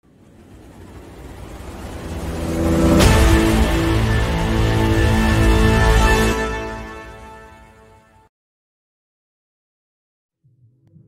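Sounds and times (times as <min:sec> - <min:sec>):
rising intro music tones: 0:00.5 - 0:07.8.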